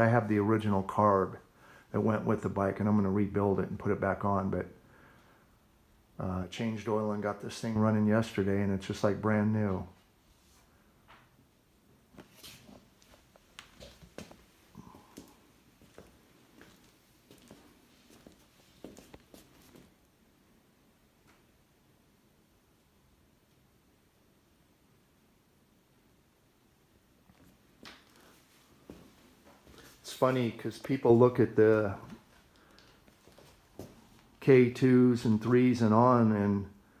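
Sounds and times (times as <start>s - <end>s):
faint clicks and taps: 32.1s - 34.3s.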